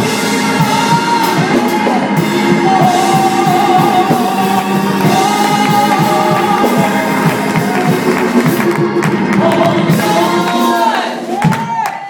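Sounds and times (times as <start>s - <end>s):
organ: 0.0s - 11.4s
drums with steady beat: 0.0s - 12.0s
women singing in harmony: 0.1s - 7.9s.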